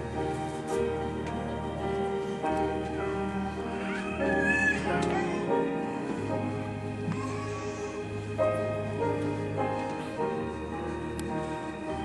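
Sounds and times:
church organ playing hymn: 0.0 - 12.0
piano: 0.0 - 12.0.

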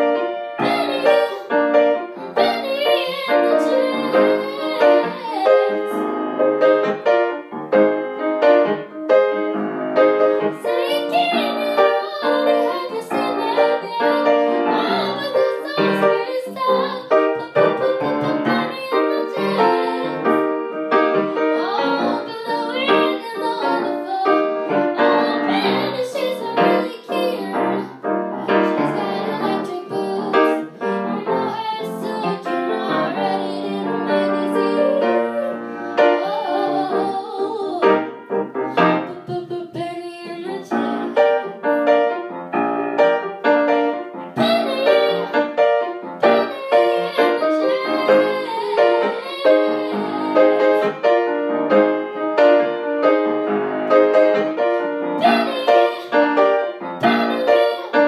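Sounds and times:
jazz-funk grand piano: 0.0 - 58.0.

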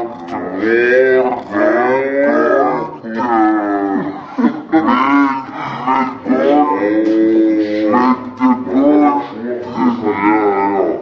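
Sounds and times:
man making wordless vocal noises: 4.1 - 11.0.

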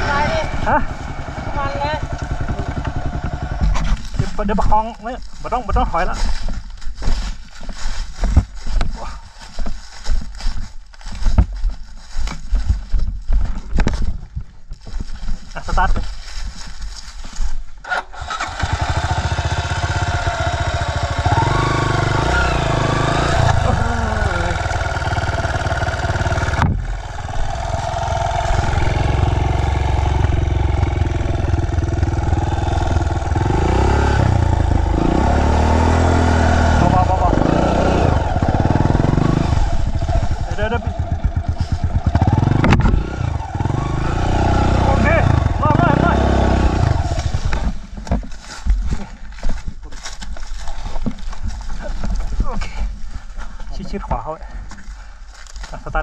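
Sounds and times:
dirt bike engine revving: 0.0 - 6.1, 17.8 - 47.8.

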